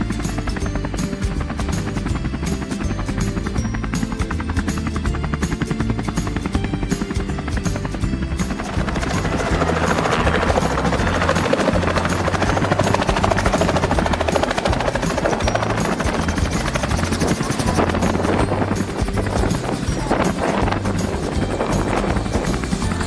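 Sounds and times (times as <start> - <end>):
helicopter rotor and engine: 0.0 - 23.0
music playing: 0.0 - 23.0.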